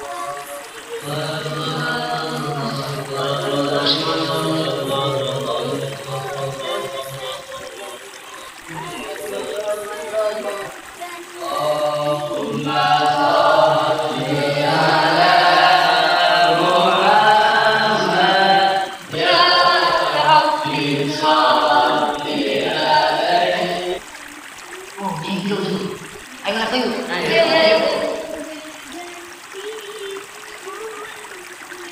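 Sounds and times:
men chanting a religious recitation: 0.0s - 24.1s, 25.0s - 29.0s.

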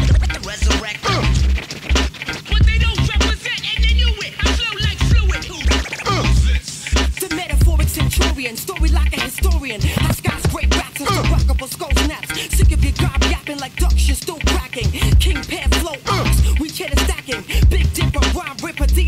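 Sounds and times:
heavy bass kicks: 0.0s - 0.4s, 2.6s - 3.2s, 9.8s - 10.8s
fast hi-hats: 0.0s - 19.0s
rapping over a beat: 0.0s - 19.0s.

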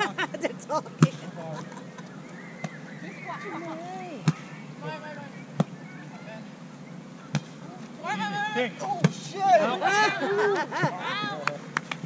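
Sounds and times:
faint voices: 2.9s - 11.7s
volleyball being hit: 4.2s - 4.6s, 5.6s - 5.8s, 7.3s - 7.6s, 9.0s - 9.3s.

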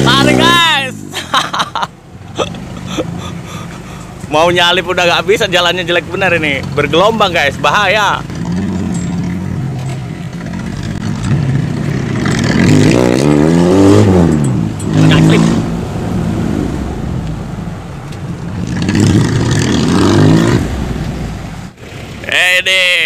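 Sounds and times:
vehicle engine accelerating: 6.2s - 22.3s.

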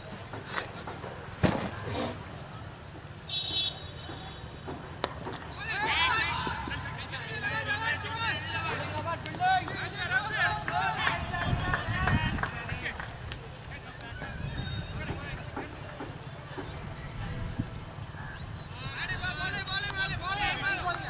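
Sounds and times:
people chatting: 5.6s - 17.4s, 18.8s - 21.0s.

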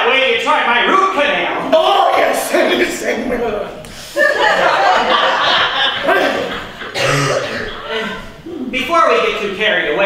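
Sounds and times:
man making throaty vocal sounds: 6.0s - 7.8s.

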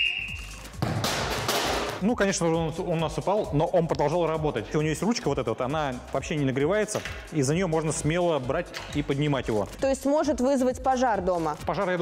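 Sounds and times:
sports whistle blast: 0.0s - 0.8s.

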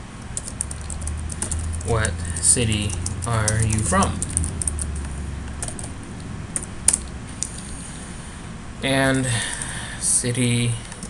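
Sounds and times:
computer keyboard typing: 0.4s - 7.6s.

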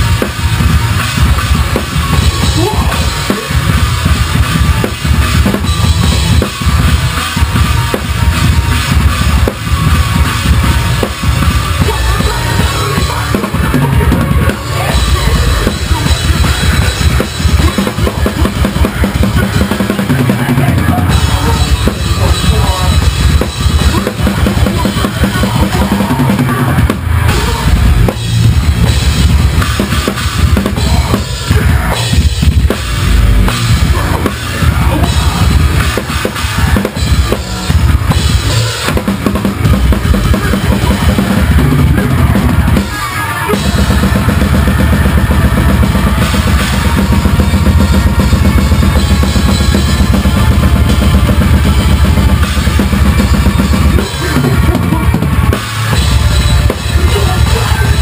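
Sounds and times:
metal band playing: 0.0s - 58.0s.

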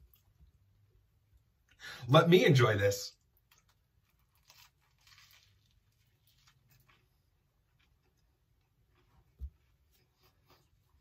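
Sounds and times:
person crunching fried bread: 3.2s - 11.0s.

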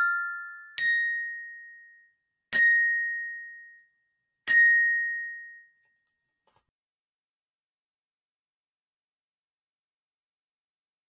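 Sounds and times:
glockenspiel notes ringing: 0.0s - 6.0s.

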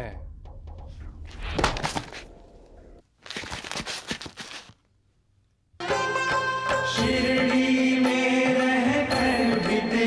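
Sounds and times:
devotional chant-like music: 6.7s - 10.0s.

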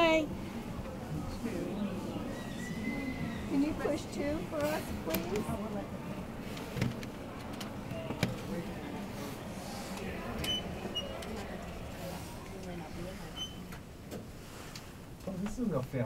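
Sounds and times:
elevator hum: 0.0s - 14.1s.

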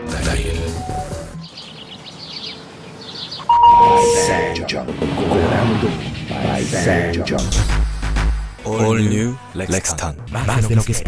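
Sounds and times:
music: 0.0s - 1.5s, 3.5s - 11.0s
short high chirps: 3.5s - 4.6s
two-note chime: 3.5s - 4.6s.

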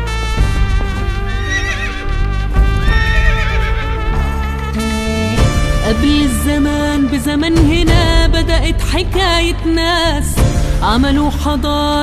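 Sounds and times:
instrumental introduction music: 0.0s - 8.5s
horse whinnies: 1.3s - 4.7s.

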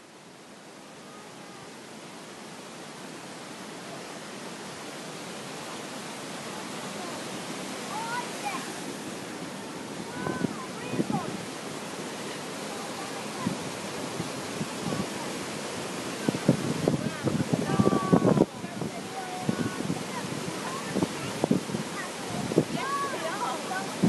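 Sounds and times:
rushing flowing water: 0.0s - 24.0s.

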